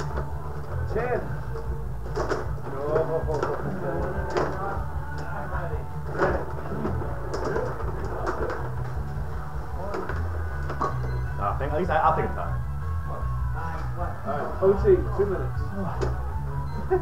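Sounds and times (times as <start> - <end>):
background music: 0.0 - 17.0
muffled background voices: 0.0 - 17.0.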